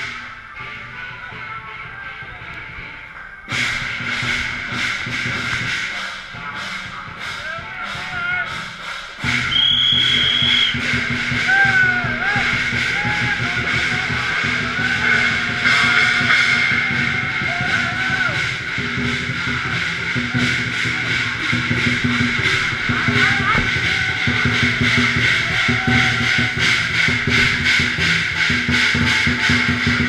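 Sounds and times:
drum beating: 0.0 - 30.0
hand gongs ringing: 13.6 - 30.0.

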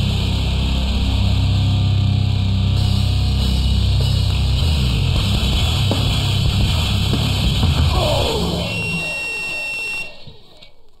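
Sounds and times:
heavy distorted guitar band: 0.0 - 9.4
guitar feedback whine: 0.0 - 10.6.

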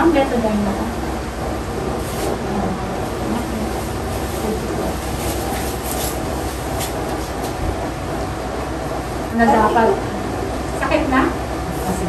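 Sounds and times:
rushing noise with low rumble: 0.0 - 9.4.

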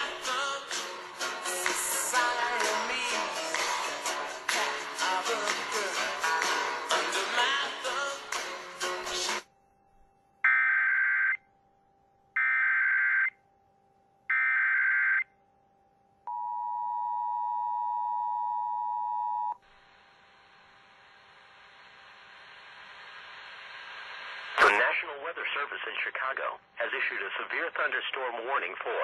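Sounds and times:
synthesized voice reading: 24.6 - 29.0.

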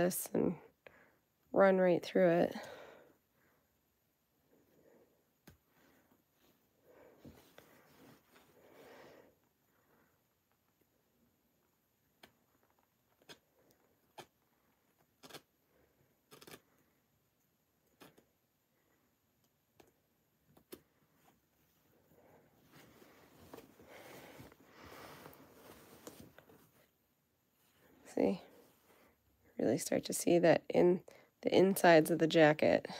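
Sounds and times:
fabric rustling: 21.0 - 29.2.

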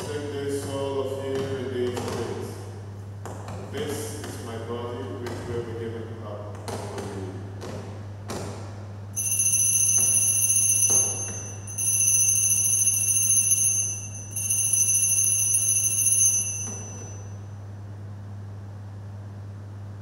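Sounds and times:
altar bells ringing: 9.2 - 17.4.

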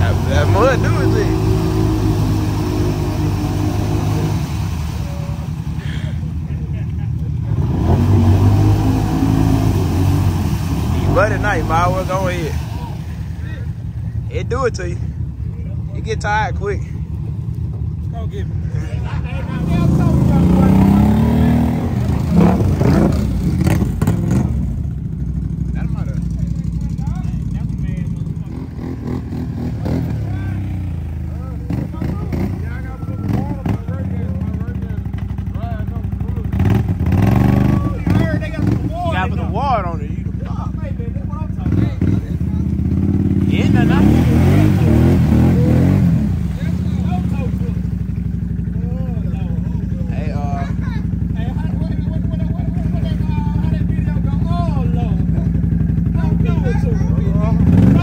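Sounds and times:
atv engines revving: 0.0 - 58.0.

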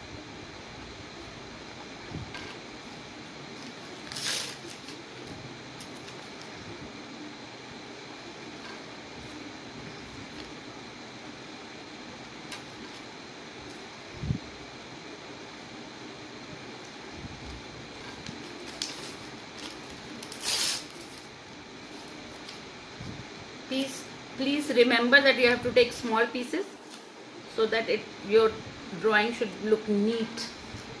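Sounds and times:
fan hum: 0.0 - 31.0
paper tearing: 4.0 - 5.0, 18.5 - 21.2.

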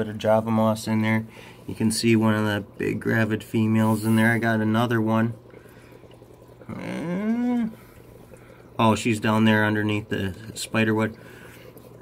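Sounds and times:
man humming: 6.7 - 7.8.

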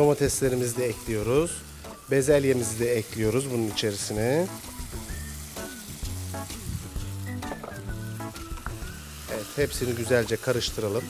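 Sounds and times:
background music: 0.0 - 11.0
beef sizzling in pot: 0.0 - 11.0.

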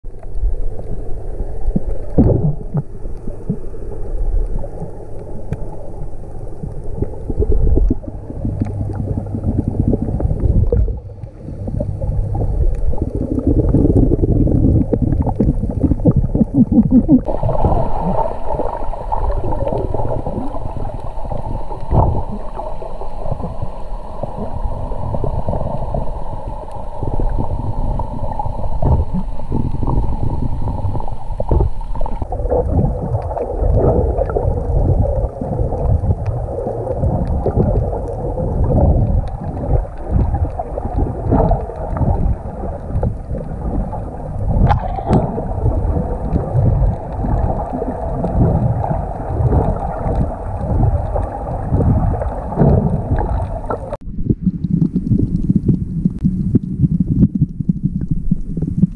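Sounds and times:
water sloshing underwater: 0.0 - 58.9.

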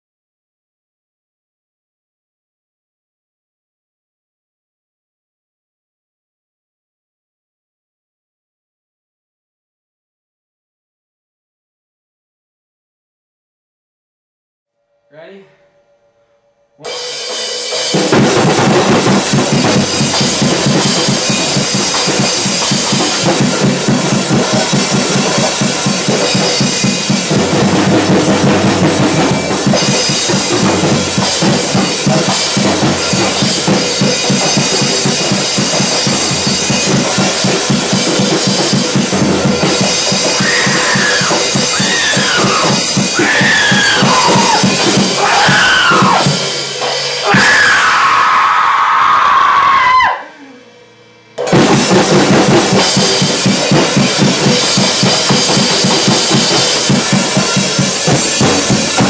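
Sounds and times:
band playing loud music: 16.8 - 48.4, 51.4 - 59.0.

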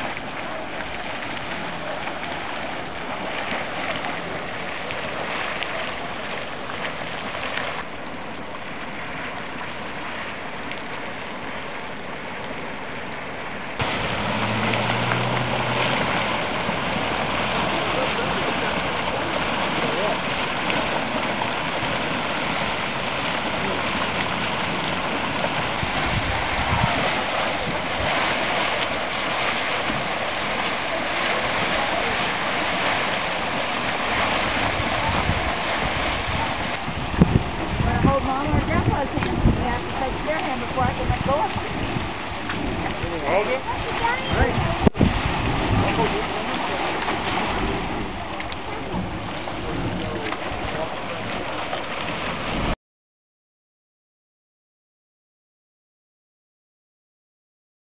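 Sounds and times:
gurgling water: 0.0 - 52.8.

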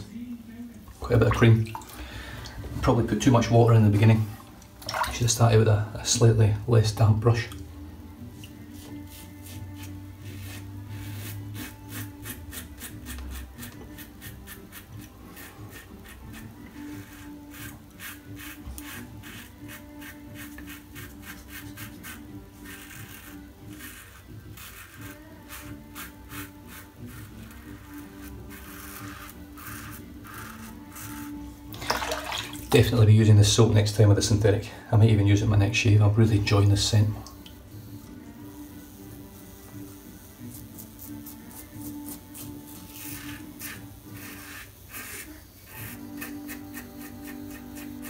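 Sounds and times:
background music: 0.0 - 48.0
razor scraping stubble: 8.4 - 31.8, 36.5 - 48.0.

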